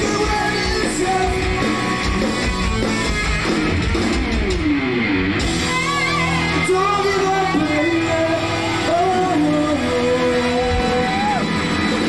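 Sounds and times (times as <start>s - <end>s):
hard rock band playing live: 0.0s - 12.0s.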